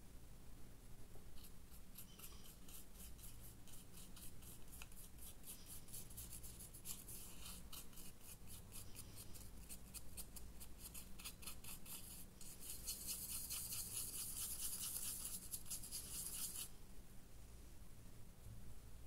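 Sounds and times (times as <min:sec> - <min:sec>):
paintbrush scrubbing: 0:01.4 - 0:16.7.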